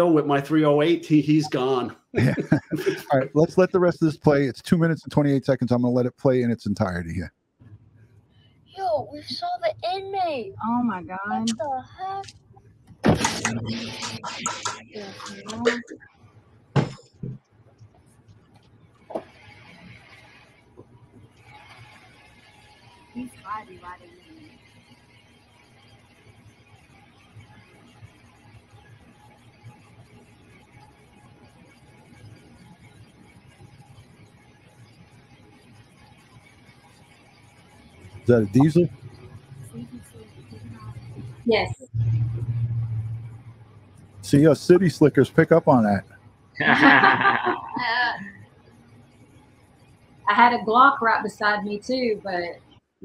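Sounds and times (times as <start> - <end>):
diesel truck engine hum: 40.8 - 43.6.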